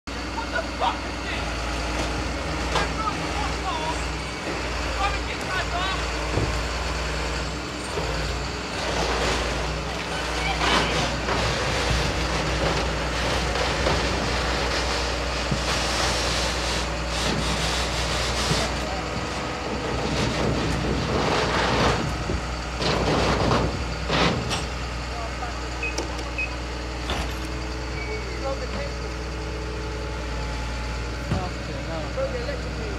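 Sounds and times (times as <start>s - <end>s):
diesel lorry engine idling: 0.1s - 32.9s.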